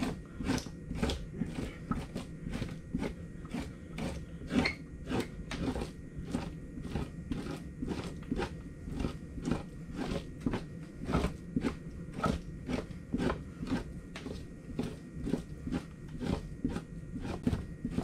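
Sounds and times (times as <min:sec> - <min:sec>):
knife scraping fat off pelt: 0:00.0 - 0:18.0.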